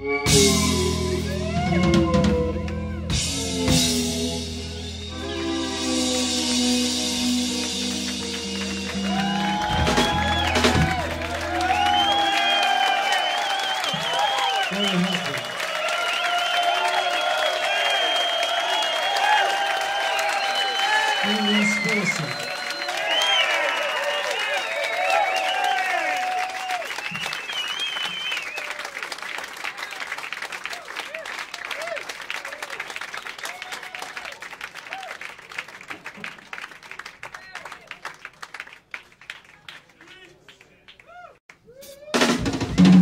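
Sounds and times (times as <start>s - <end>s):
audience applauding and cheering: 4.8s - 42.3s
audience shouts and whistles: 8.7s - 29.1s, 31.0s - 34.3s.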